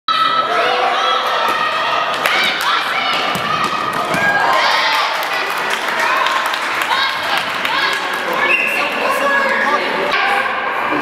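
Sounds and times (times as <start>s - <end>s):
children shouting and cheering: 0.1s - 8.5s.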